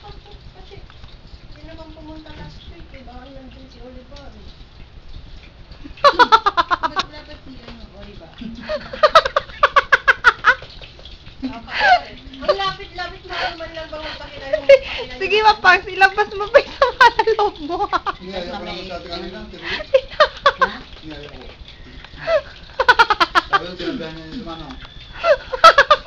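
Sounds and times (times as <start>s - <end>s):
people talking: 0.0s - 0.9s, 1.6s - 4.5s, 6.7s - 8.8s, 11.4s - 21.6s, 23.5s - 24.8s
woman laughing hard: 6.0s - 7.0s, 8.6s - 10.7s, 22.2s - 23.6s, 25.2s - 26.0s
burst of laughter: 25.2s - 26.0s.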